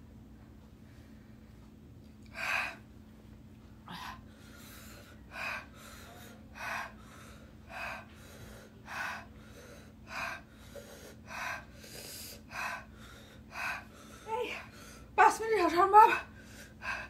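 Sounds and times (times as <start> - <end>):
woman breathing hard: 2.3 - 2.9, 3.8 - 15.2, 16.0 - 17.0.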